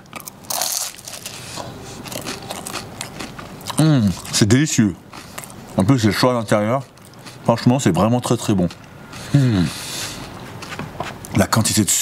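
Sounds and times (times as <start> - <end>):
crisp pastry crunching while chewed: 0.0 - 4.5.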